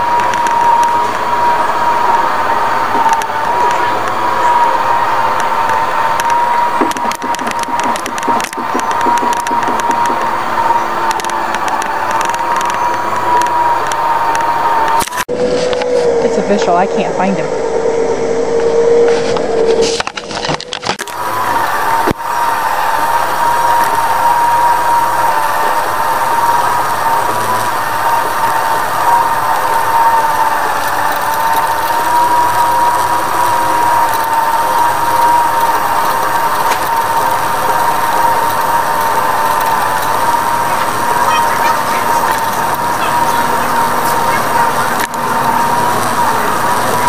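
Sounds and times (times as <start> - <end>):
shopping cart rolling on concrete: 0.0 - 15.7, 21.0 - 47.0
high wavering whine: 0.0 - 47.0.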